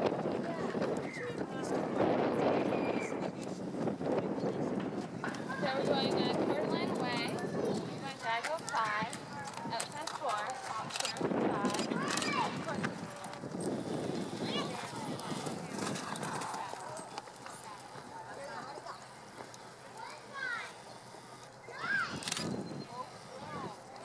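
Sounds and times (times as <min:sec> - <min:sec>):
people talking in background: 0:00.0 - 0:24.0.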